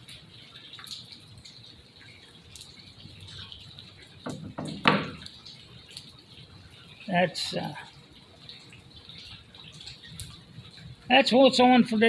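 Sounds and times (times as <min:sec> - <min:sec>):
rainwater dripping: 0:00.0 - 0:12.0
sharp clicks and knocks: 0:04.2 - 0:05.4.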